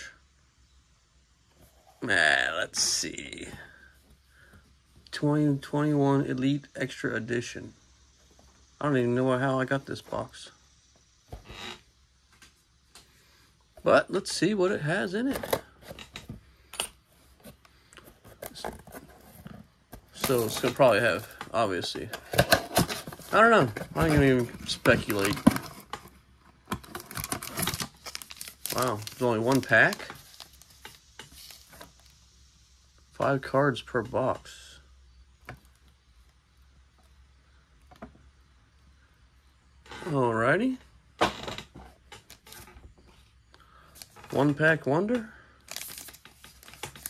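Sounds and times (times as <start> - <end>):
plastic wrap rustling: 18.1 - 21.4, 22.2 - 32.1, 45.7 - 47.0
foil pack crinkling: 20.1 - 32.1, 45.6 - 47.0.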